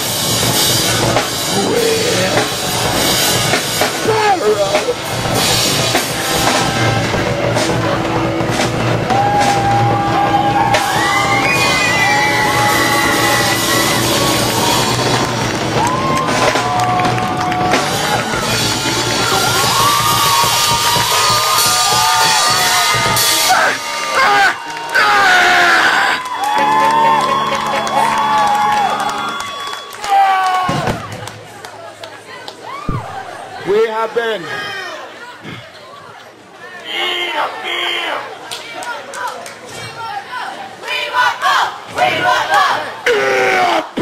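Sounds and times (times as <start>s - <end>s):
live rock band playing: 0.0s - 24.9s, 26.4s - 29.5s
yelled vocals: 1.1s - 8.1s, 40.8s - 44.0s
shouting and whoops: 9.0s - 31.2s, 32.5s - 33.6s.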